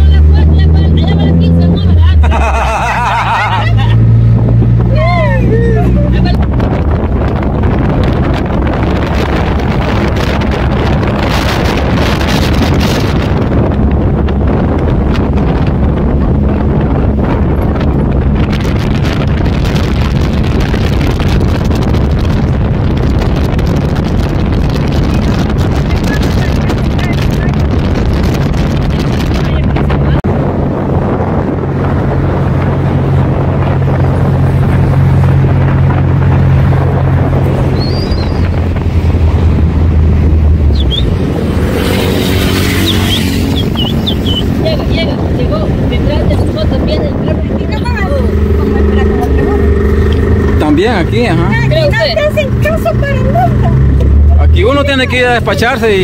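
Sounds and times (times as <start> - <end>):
road noise: 0.0 - 56.0
vehicle engine drone: 0.0 - 56.0
wind buffeting microphone: 0.0 - 56.0.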